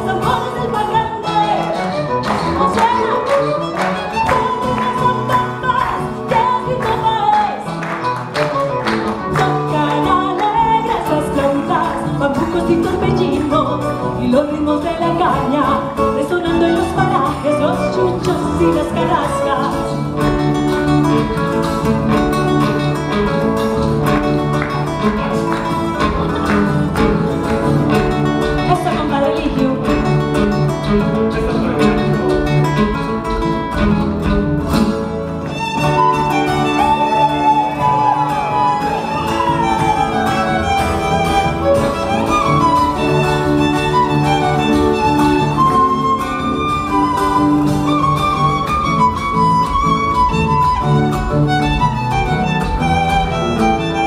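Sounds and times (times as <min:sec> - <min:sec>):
plucked and strummed strings: 0:00.0 - 0:54.0
violin melody: 0:00.0 - 0:54.0.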